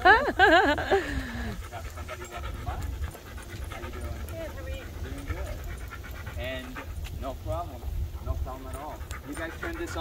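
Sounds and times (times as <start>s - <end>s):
dog panting rapidly: 0.9s - 10.0s.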